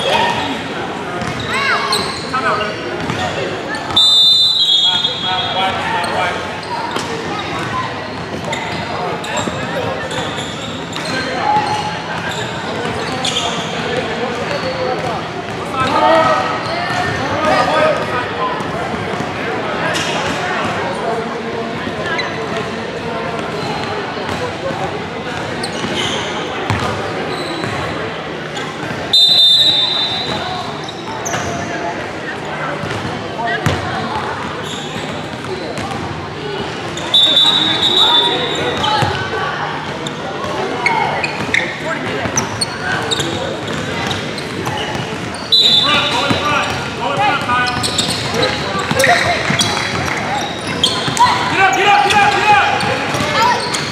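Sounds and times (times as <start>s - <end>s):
voices talking in echoing hall: 0.0s - 53.9s
short shrill whistle: 3.9s - 5.6s, 29.1s - 30.4s, 37.1s - 38.6s, 45.5s - 46.2s.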